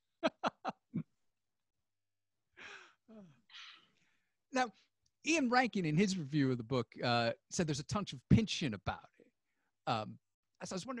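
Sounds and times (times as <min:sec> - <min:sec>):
man sighing: 0:02.6 - 0:03.8.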